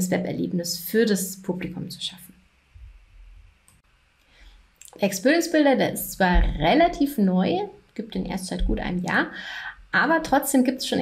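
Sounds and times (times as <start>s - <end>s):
faint low room hum: 0.0s - 11.0s.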